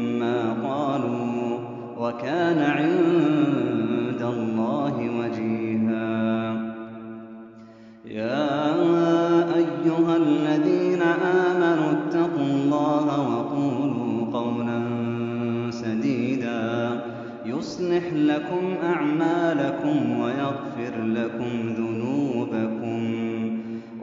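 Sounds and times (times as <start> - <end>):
man reciting melodically: 0.0 - 6.8, 8.0 - 24.0.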